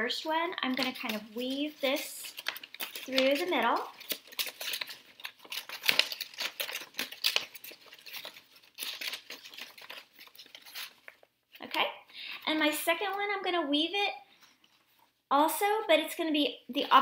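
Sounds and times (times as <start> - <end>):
paper rustling and crinkling: 0.6 - 11.8.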